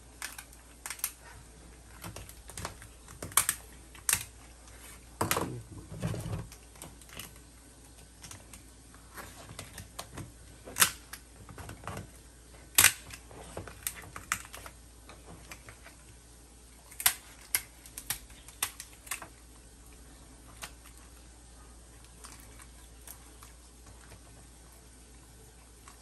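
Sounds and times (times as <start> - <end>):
shears cracking lobster shell: 0.1 - 1.2, 1.9 - 4.4, 9.6 - 12.0, 12.7 - 14.8, 16.8 - 19.4.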